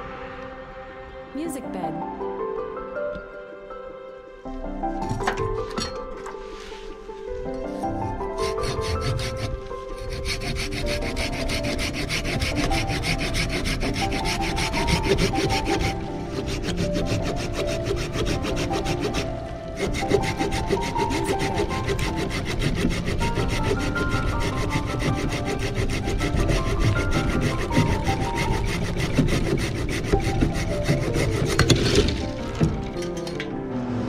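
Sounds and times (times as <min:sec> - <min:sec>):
hand saw cutting branch: 0:07.7 - 0:32.7.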